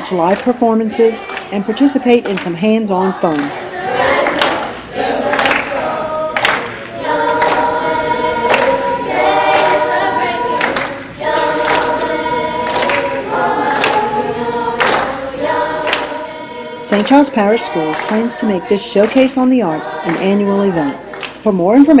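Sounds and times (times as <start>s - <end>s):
choir singing sustained notes: 0.0s - 21.5s.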